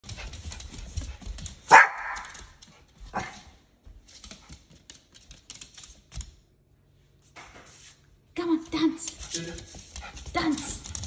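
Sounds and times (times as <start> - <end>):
dog claws clicking on hard floor: 0.0 - 6.6, 8.6 - 11.0
small dog barking: 1.7 - 2.3.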